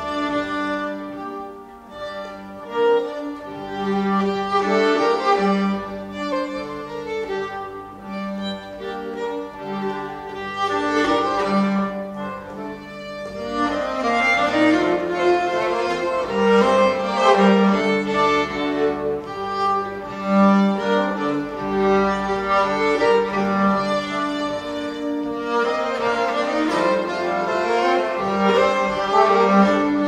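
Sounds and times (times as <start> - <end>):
accordion chords: 0.0 - 30.0
bowed string melody: 0.0 - 30.0.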